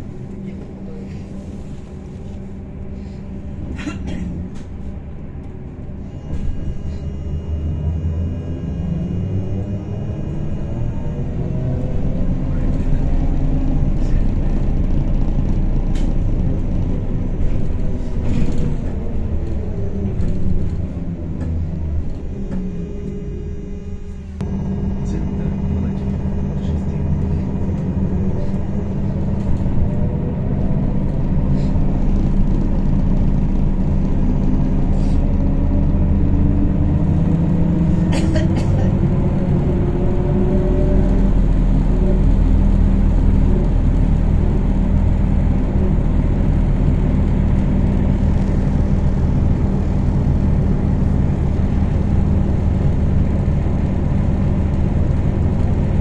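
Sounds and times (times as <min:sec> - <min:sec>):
trolleybus hum and rumble: 0:00.0 - 0:56.0
electric drive whine: 0:05.4 - 0:13.0, 0:22.0 - 0:30.2.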